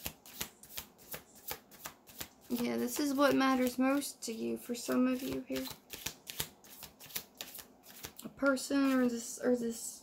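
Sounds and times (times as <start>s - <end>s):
cards being shuffled: 0.0s - 4.0s, 4.9s - 9.1s.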